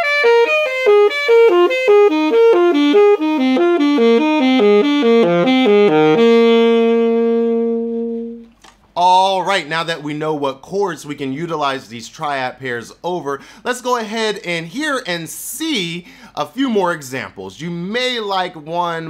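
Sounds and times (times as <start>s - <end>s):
alto saxophone playing fast run: 0.0s - 8.5s.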